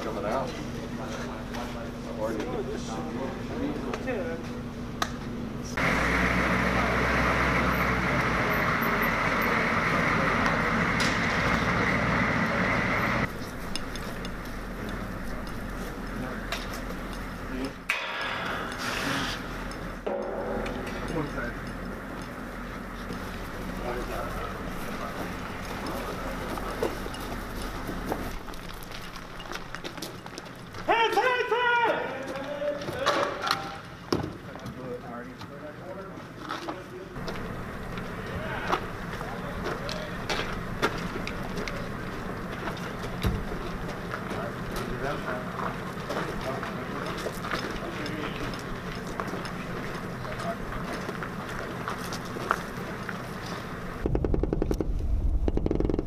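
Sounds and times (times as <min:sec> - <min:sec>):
diesel truck engines running: 0:00.0 - 0:30.9, 0:36.2 - 0:56.0
low hum: 0:08.9 - 0:29.8, 0:53.2 - 0:56.0
footsteps: 0:18.0 - 0:31.3, 0:36.2 - 0:53.7
man shouting: 0:30.9 - 0:33.1.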